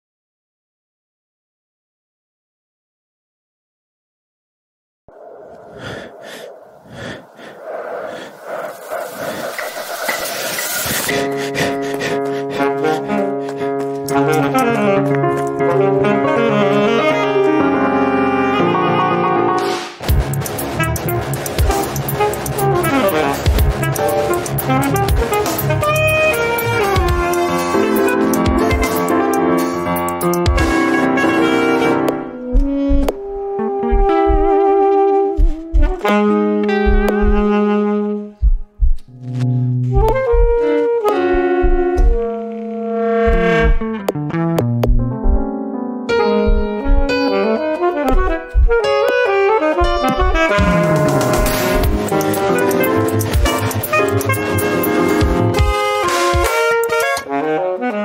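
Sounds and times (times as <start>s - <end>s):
pulsing recorded breathing: 5.1s - 13.8s
piano: 10.6s - 38.3s, 39.9s - 58.0s
alto saxophone: 11.1s - 19.6s, 20.7s - 38.4s, 39.2s - 44.2s, 46.1s - 58.0s
low electronic beats: 32.4s - 34.8s, 35.4s - 37.7s, 38.4s - 42.4s, 43.1s - 47.4s, 48.0s - 49.2s, 49.8s - 56.5s.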